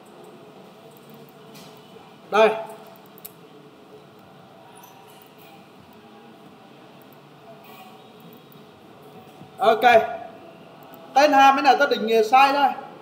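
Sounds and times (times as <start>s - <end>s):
room noise: 0.0s - 13.0s.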